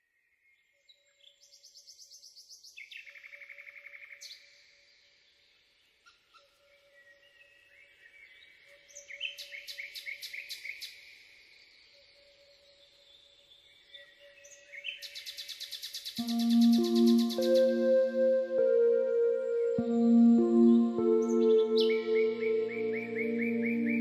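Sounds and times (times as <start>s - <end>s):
songbirds singing: 0.9s - 24.0s
faint steady tone: 16.2s - 24.0s.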